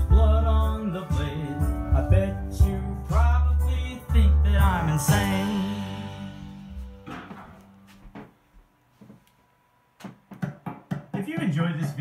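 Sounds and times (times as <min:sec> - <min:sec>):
music through speakers: 0:00.0 - 0:07.6.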